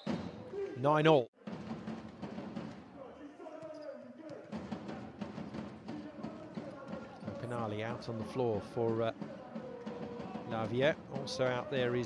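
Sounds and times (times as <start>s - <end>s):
crowd voices: 5.8s - 12.0s.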